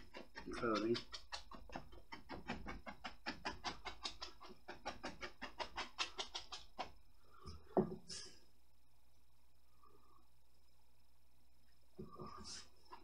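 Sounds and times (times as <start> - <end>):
paint brush scratching on canvas: 0.0 - 7.0.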